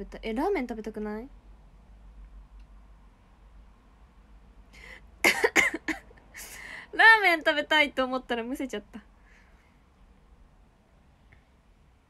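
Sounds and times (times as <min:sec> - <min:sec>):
woman choking and coughing: 0:05.2 - 0:06.1.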